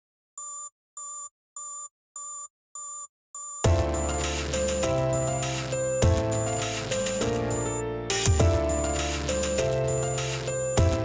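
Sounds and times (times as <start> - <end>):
electronic beeps: 3.4 - 11.0.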